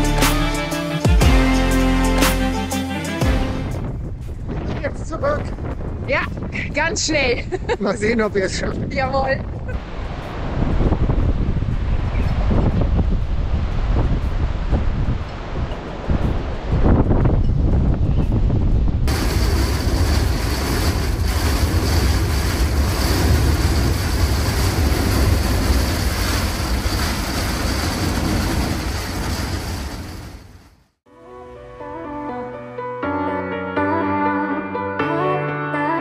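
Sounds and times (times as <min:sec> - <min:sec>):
storm rain and wind rushing: 0:03.2 - 0:31.0
storm wind gusting on microphone: 0:03.5 - 0:30.7.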